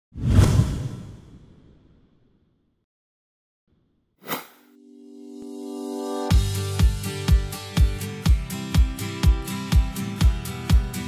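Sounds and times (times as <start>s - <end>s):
whoosh with deep rumble: 0.2s - 1.8s.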